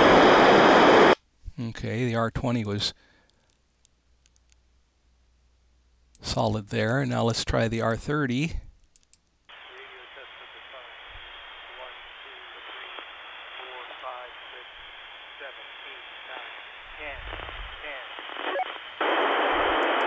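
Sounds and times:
radio hiss: 0.0s - 2.0s, 9.5s - 20.0s
faint voice over radio: 9.5s - 18.6s.

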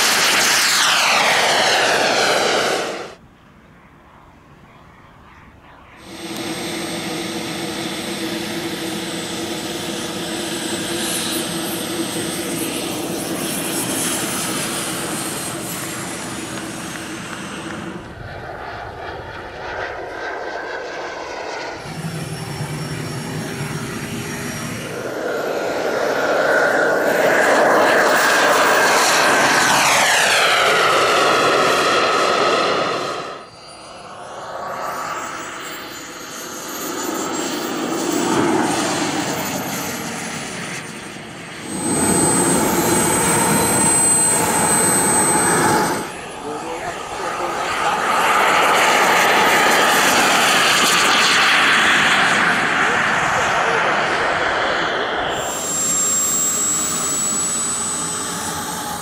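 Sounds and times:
jet turbine engine whine: 0.0s - 59.0s.

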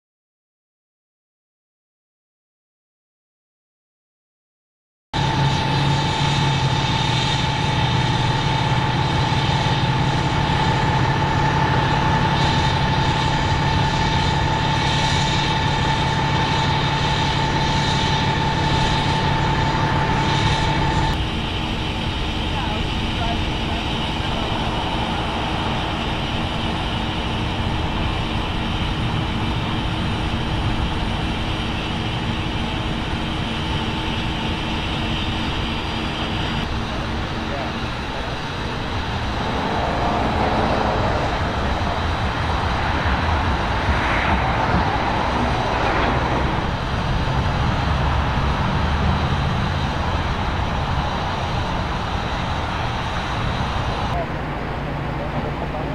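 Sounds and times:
emergency vehicle engines idling: 5.2s - 55.9s
high steady whine: 5.2s - 55.9s.

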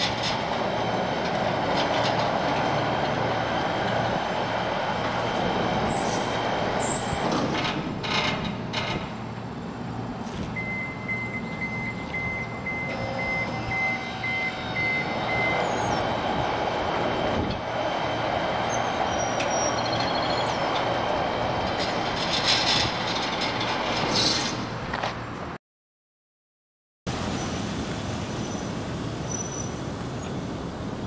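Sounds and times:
sliding gate mechanical noise: 0.0s - 9.3s, 12.8s - 25.0s.

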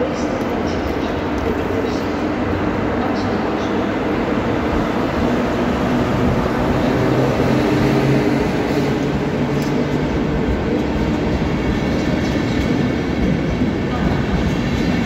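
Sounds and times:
electric locomotive humming: 0.0s - 15.0s.

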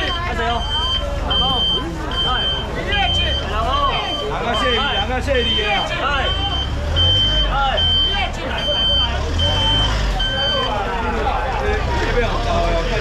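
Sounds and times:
reversing alarm beeping: 0.0s - 10.9s
crowd chatter: 0.0s - 13.0s.

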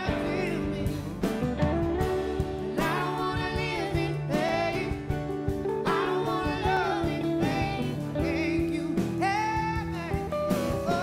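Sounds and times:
live band playing: 0.0s - 11.0s
person singing: 0.0s - 11.0s.

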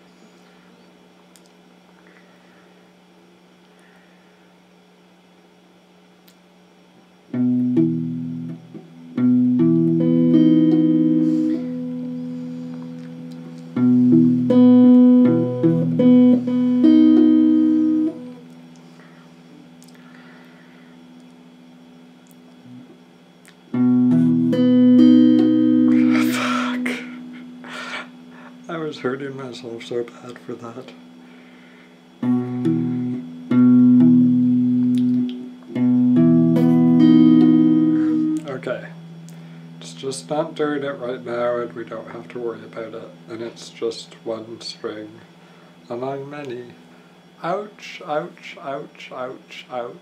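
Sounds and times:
electric guitar chords strummed: 7.3s - 18.8s, 23.7s - 28.6s, 32.1s - 43.3s.

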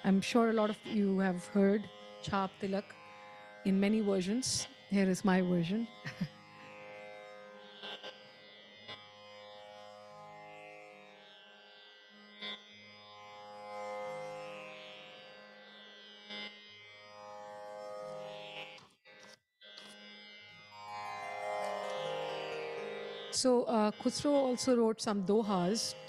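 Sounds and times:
sustained droning instrumental notes: 0.0s - 3.0s, 20.6s - 26.0s.

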